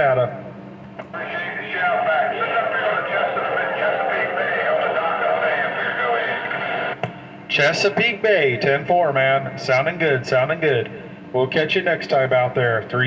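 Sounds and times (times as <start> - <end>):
garbled man's voice over radio: 1.0 - 10.9.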